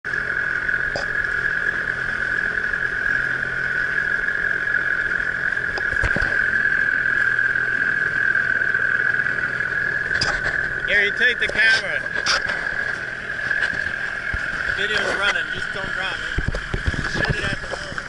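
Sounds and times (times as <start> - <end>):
outboard motor running: 0.0 - 18.0.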